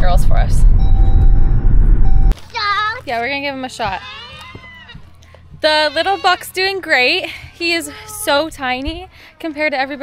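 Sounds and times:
woman speaking: 0.0s - 0.7s, 3.1s - 4.1s
low rumble inside car: 0.0s - 2.3s.

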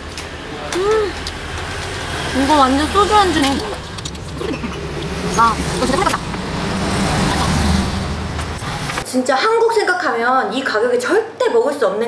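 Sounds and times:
road traffic rumble: 0.0s - 9.0s.

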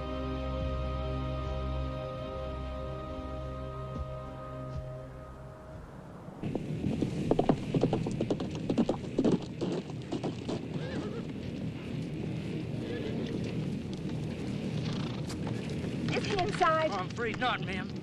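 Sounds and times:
horse hooves clopping: 6.4s - 18.0s.

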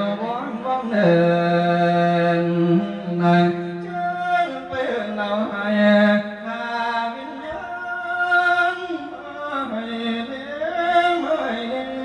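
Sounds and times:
man chanting in sliding notes: 0.0s - 12.0s.

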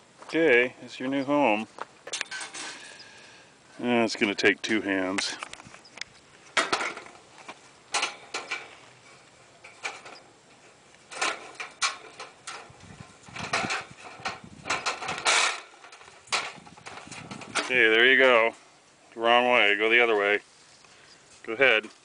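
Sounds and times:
wire cage trap rattling: 11.1s - 17.9s.

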